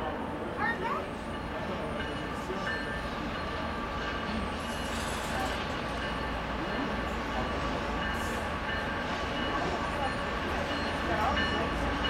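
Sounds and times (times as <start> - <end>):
diesel locomotive engine rumble: 0.0 - 12.0.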